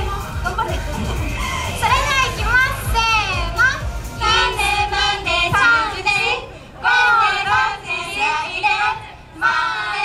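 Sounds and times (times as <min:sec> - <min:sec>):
women's voices over loudspeakers: 0:01.8 - 0:04.8.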